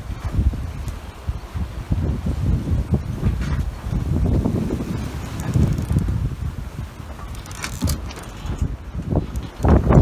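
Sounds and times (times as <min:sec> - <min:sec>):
wind buffeting microphone: 0:00.0 - 0:10.0
brief rustle: 0:07.1 - 0:09.8.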